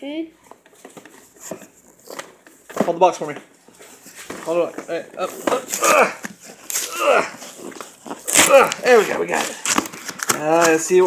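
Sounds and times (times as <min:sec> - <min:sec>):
cardboard scraping: 0:00.8 - 0:11.0
person straining grunt: 0:05.5 - 0:07.4, 0:08.3 - 0:09.1.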